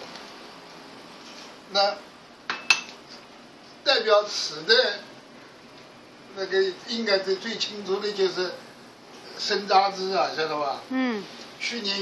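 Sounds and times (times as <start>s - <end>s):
sharp clink on ceramic: 2.5s - 3.0s.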